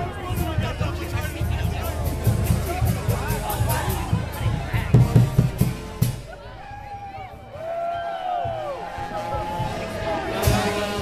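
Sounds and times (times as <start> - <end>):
street band drums and brass: 0.0 - 7.5, 8.2 - 11.0
heavy drum beats: 0.0 - 7.7, 8.3 - 11.0
crowd voices: 0.0 - 11.0.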